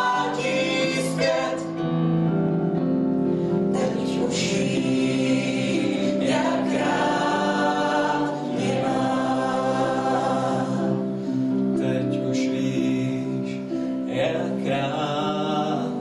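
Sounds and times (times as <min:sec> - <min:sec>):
group singing a worship song: 0:00.0 - 0:02.0, 0:03.7 - 0:12.0.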